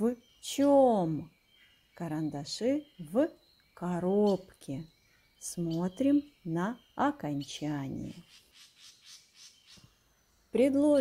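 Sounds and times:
high thin bird chirps: 0:00.0 - 0:10.7.

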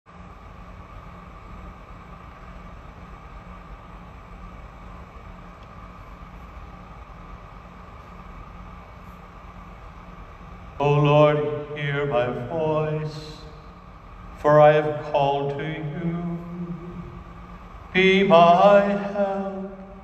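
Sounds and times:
room hum with hiss: 0:00.1 - 0:20.0.

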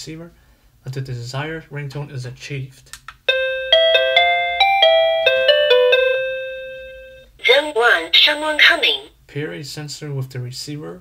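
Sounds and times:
doorbell chime tune: 0:03.3 - 0:07.3.

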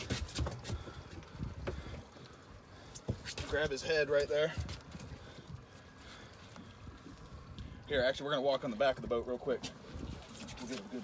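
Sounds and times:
outdoor background rumble and hiss: 0:00.0 - 0:11.0.

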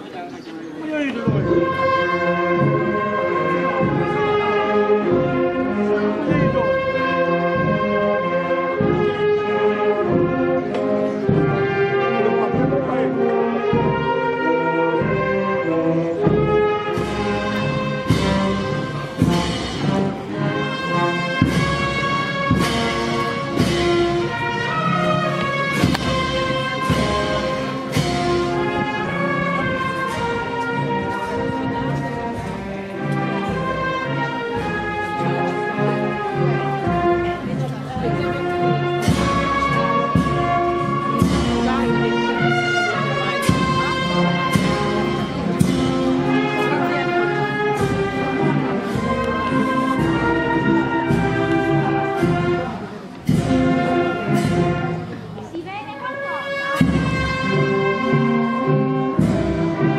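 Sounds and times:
brass band playing chords: 0:00.7 - 0:59.9
regular beats: 0:17.0 - 0:34.8.

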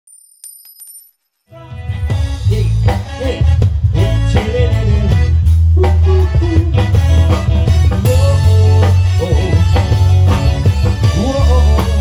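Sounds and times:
live band music: 0:01.6 - 0:12.0.

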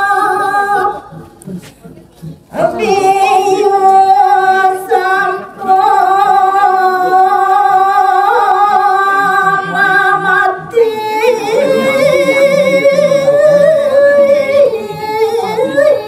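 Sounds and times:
woman singing into microphone: 0:00.0 - 0:01.2, 0:02.5 - 0:16.0.

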